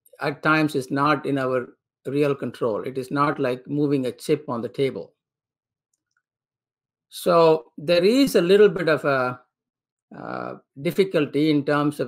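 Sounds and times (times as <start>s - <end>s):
man talking: 0.2s - 5.1s, 7.1s - 9.4s, 10.2s - 12.0s.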